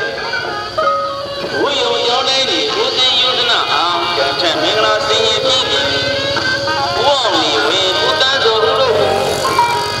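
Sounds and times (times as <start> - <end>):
loud music with wavering melody: 0.0 - 10.0.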